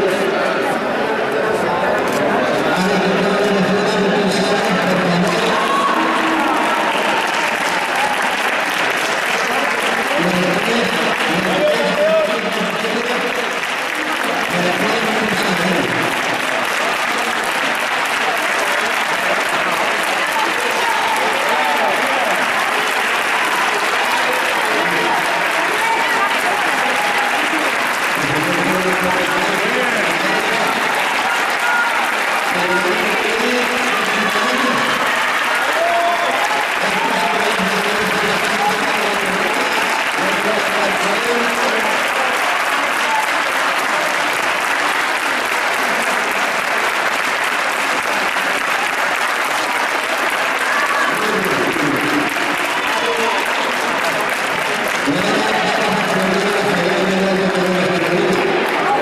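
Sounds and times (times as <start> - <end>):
audience applause: 0.0 - 59.0.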